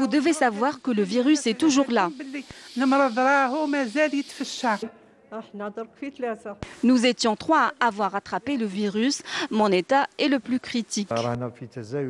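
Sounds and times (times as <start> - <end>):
steady high hiss: 0.0 - 4.9, 6.6 - 11.6
woman speaking: 0.0 - 11.3.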